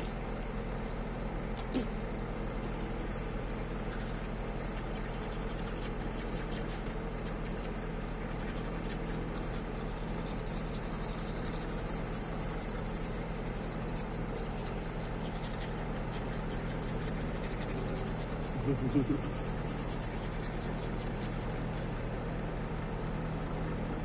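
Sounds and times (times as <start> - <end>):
low engine hum: 0.0 - 24.0
toothbrush scrubbing teeth: 3.4 - 22.1.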